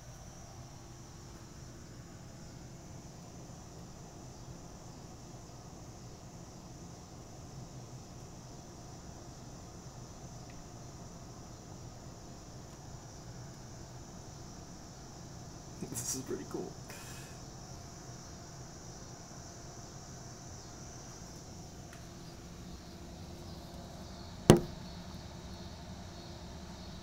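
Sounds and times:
night insects chirping: 0:00.0 - 0:27.0
low steady hum: 0:21.4 - 0:25.4.

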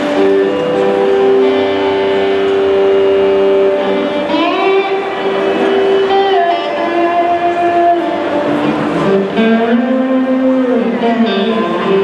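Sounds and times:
band holding a sustained chord: 0:00.0 - 0:12.0.

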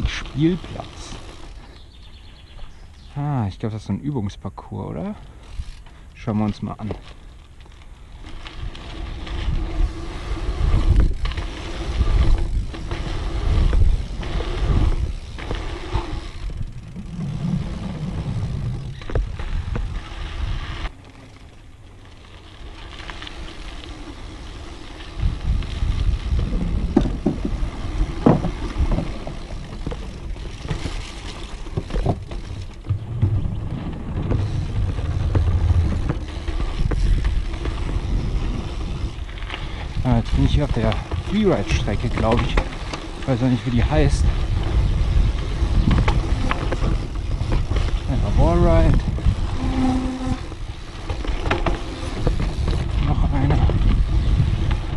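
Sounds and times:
bike tyres rolling on dirt: 0:00.0 - 0:54.9
bike knocking and rattling: 0:05.2 - 0:54.9
wind on microphone: 0:08.6 - 0:20.9, 0:25.1 - 0:29.8, 0:43.3 - 0:51.1, 0:52.0 - 0:54.9.

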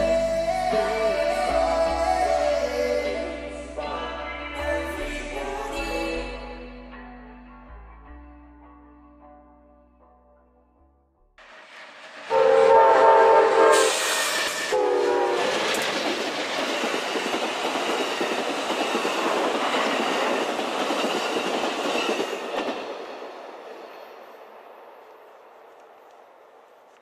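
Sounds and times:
train wheels on rails: 0:11.4 - 0:27.0
train horn blasts: 0:12.3 - 0:15.8.

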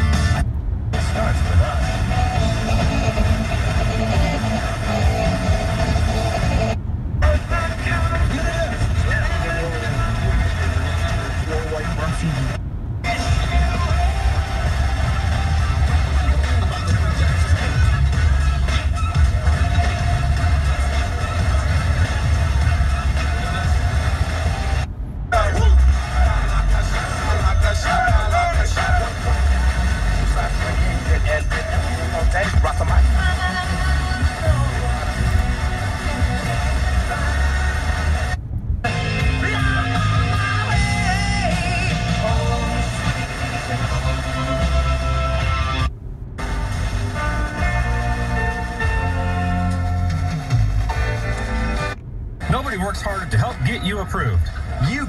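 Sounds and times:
low car rumble: 0:00.0 - 0:55.0
radio music and talk: 0:00.0 - 0:55.0.

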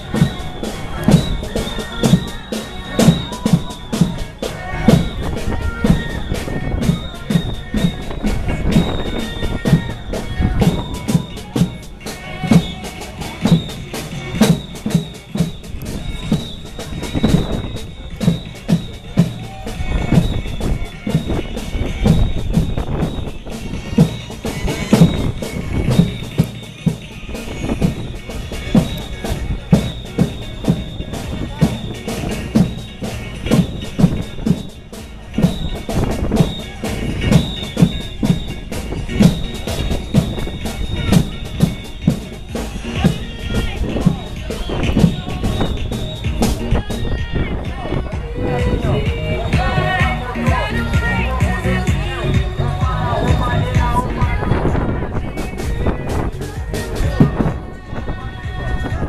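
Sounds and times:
crowd voices: 0:00.0 - 0:59.0
drums beating a rhythm: 0:00.0 - 0:59.0.

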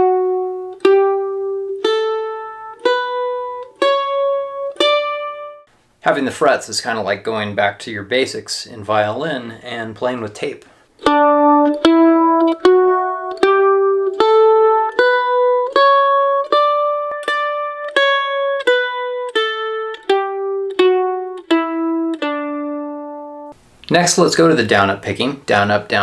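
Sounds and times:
mandolin playing a scale: 0:00.0 - 0:05.7, 0:09.0 - 0:23.6.

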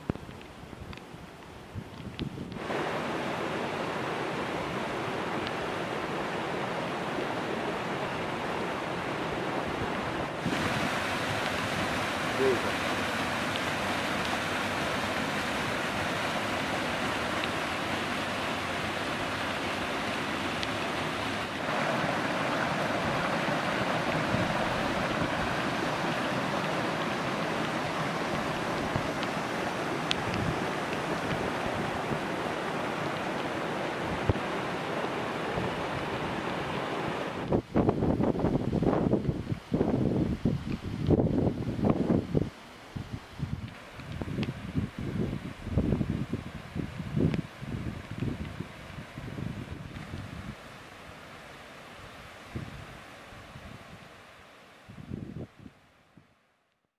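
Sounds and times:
water rushing over boulders: 0:00.0 - 0:56.2
wind buffeting microphone: 0:37.4 - 0:50.6, 0:54.9 - 0:55.7.

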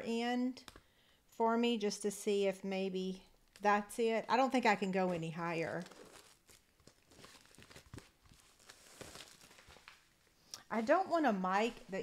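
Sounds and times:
cardstock rustling and crinkling: 0:05.0 - 0:10.2.

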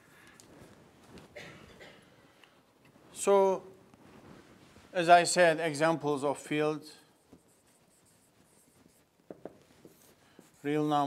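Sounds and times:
marker pen writing on whiteboard: 0:07.2 - 0:10.9.

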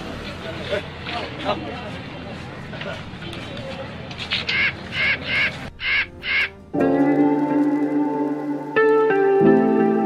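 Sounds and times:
crow cawing: 0:04.5 - 0:06.5
plucked guitar music: 0:06.1 - 0:10.0.

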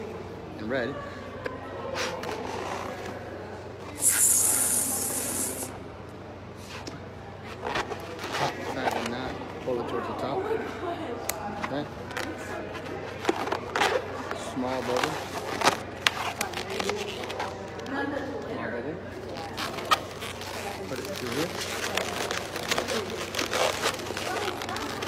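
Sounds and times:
balloon latex squeaking and rubbing: 0:04.0 - 0:05.7, 0:19.5 - 0:25.0
air hissing from balloon: 0:04.0 - 0:05.8.

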